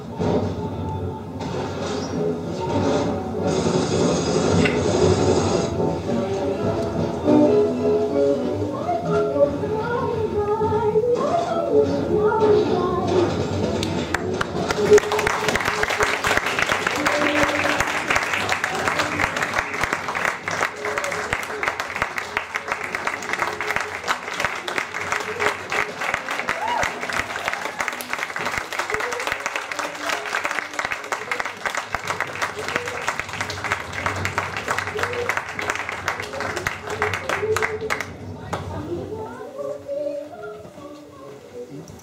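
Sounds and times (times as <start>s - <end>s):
music: 0.0s - 27.2s
audience applauding: 13.8s - 38.2s
voices among clapping: 13.8s - 38.9s.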